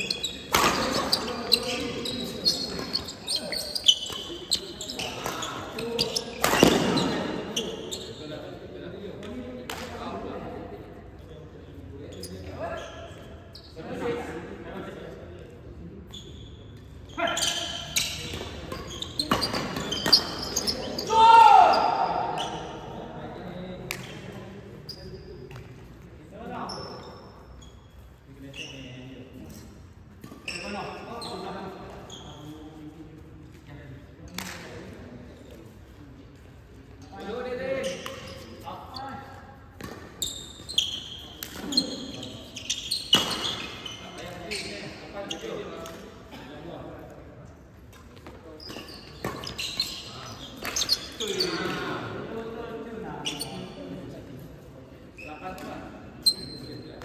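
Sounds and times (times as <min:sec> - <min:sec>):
shoes squeaking on court: 0:00.0 - 0:08.6, 0:11.2 - 0:13.9, 0:16.0 - 0:21.1, 0:21.7 - 0:23.0, 0:23.9 - 0:33.1, 0:35.3 - 0:46.4, 0:47.8 - 0:52.2, 0:52.8 - 0:54.0, 0:55.0 - 0:57.0
players' voices: 0:00.0 - 0:57.0.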